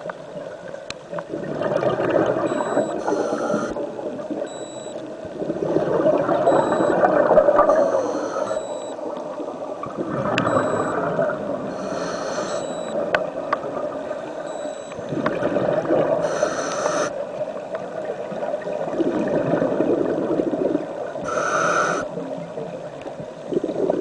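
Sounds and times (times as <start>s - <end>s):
bubbling underwater: 1.3s - 4.6s, 5.2s - 7.9s, 8.9s - 11.8s, 12.9s - 16.2s, 17.9s - 21.2s, 22.2s - 24.0s
regulator breathing hiss: 2.9s - 3.8s, 7.7s - 8.7s, 11.7s - 13.0s, 16.2s - 17.2s, 21.3s - 22.1s.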